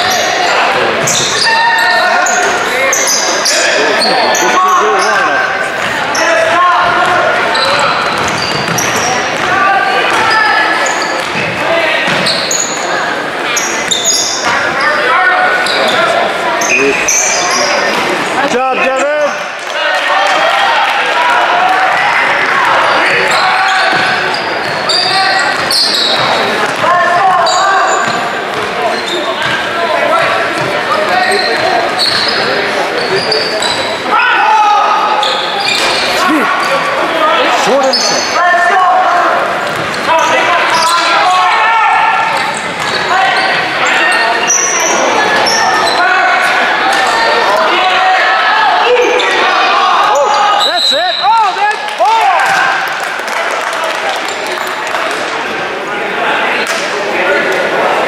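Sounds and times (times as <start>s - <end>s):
sneaker squeaks: 0.0s - 9.5s, 10.1s - 18.1s, 22.8s - 34.0s, 35.1s - 36.9s, 37.6s - 38.4s, 39.6s - 41.3s, 42.2s - 47.3s, 49.0s - 51.5s.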